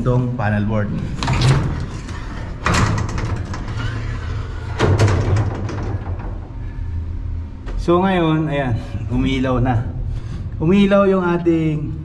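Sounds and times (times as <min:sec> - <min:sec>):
steady low hum: 0:00.0 - 0:12.0
metal cabinet door rattling: 0:01.2 - 0:06.5.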